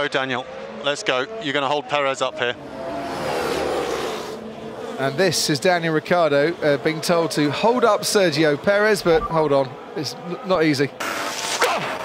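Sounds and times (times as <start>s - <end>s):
racing cars passing: 0.0s - 12.0s.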